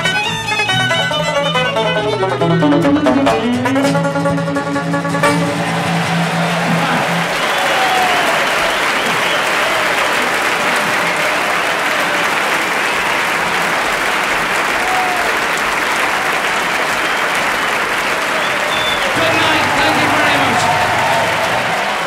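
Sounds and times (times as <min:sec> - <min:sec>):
audience applauding: 0:05.2 - 0:22.0
scattered cheers: 0:05.4 - 0:22.0.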